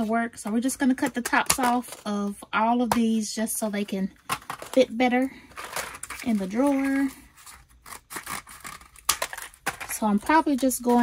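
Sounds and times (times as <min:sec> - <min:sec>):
packaging rustling: 0:04.2 - 0:11.0.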